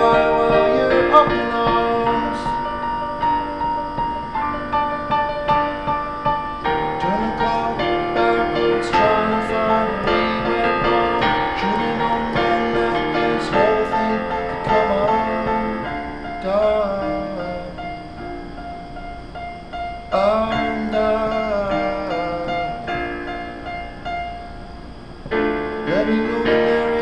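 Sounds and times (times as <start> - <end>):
digital piano playing chords: 0.0 - 27.0.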